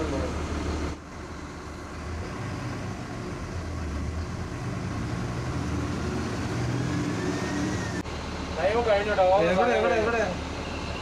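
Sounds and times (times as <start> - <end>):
bus engine rumble: 0.0 - 11.0.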